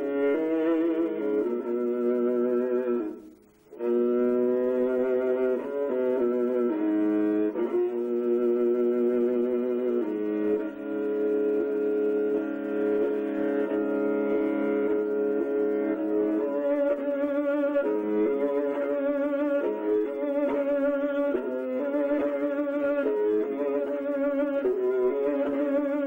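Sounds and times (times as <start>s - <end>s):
bowed horsehair fiddle: 0.0s - 26.0s.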